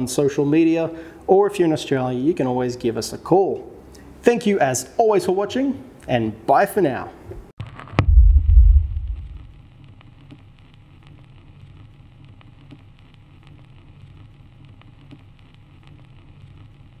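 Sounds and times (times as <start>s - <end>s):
low steady hum: 7.4s - 17.0s
deep logo boom: 7.6s - 9.6s
faint crackles: 7.6s - 17.0s.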